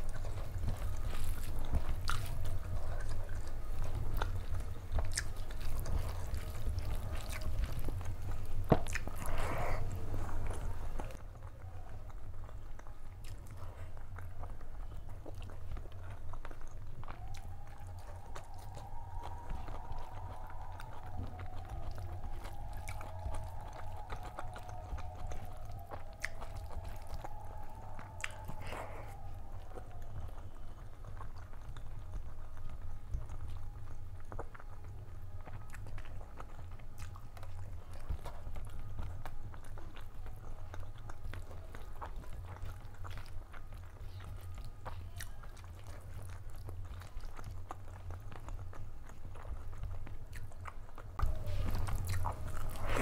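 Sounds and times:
low steady hum: 0.0 - 53.0
person chewing food: 0.0 - 53.0.

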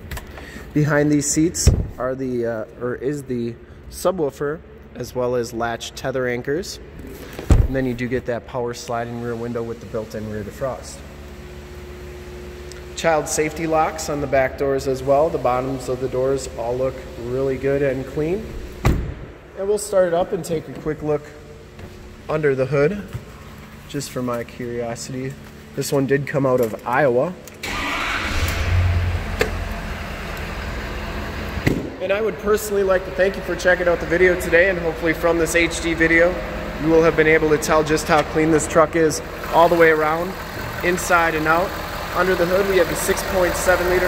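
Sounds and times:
low hum and hiss: 0.0 - 27.6, 28.3 - 44.0
diesel engine idling: 32.2 - 44.0.

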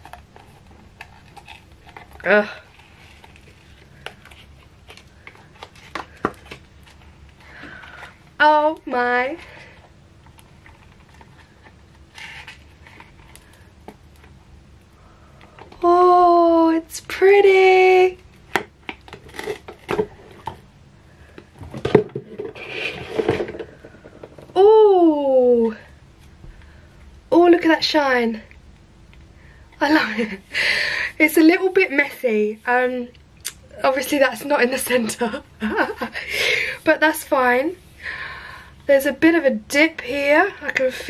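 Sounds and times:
woman saying ooh: 24.6 - 25.8.

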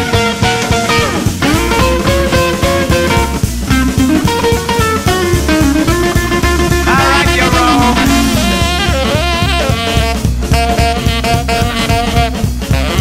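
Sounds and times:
swing band playing: 0.1 - 13.0
upright bass: 4.9 - 9.4.

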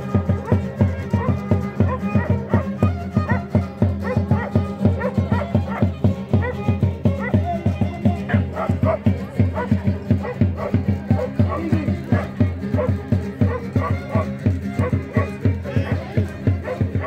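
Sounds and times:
guitars strummed quickly: 0.0 - 17.0
dog yipping and barking: 0.4 - 17.0.

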